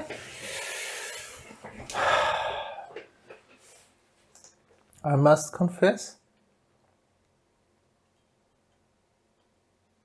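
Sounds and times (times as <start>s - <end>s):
man exhaling through nose: 0.4s - 3.0s.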